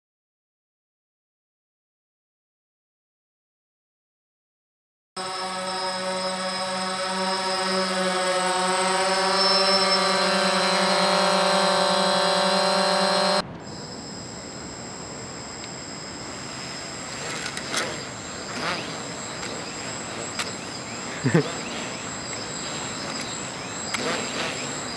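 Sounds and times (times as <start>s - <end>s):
quadcopter propeller hum: 5.2s - 24.9s
quadcopter rotors high whine: 5.2s - 24.9s.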